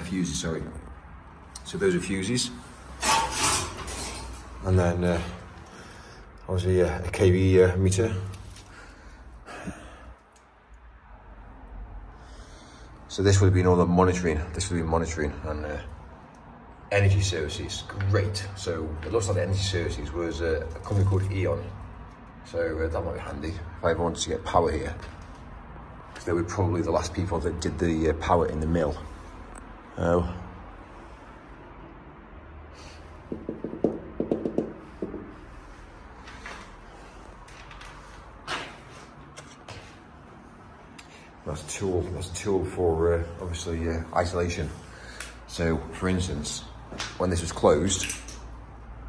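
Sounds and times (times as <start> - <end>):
knocking on window pane: 33.3 - 35.3.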